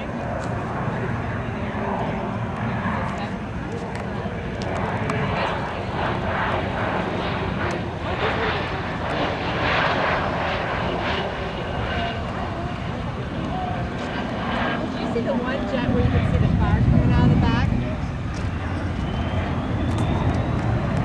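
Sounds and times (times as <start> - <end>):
faint voices: 0.0 - 21.0
jet engine rushing noise: 0.0 - 21.0.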